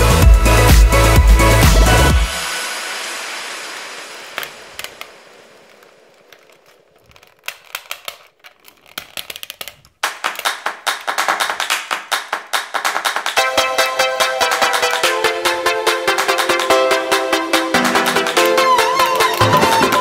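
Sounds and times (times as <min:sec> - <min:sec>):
plastic toy parts clicking: 0:04.3 - 0:13.4, 0:17.8 - 0:20.0.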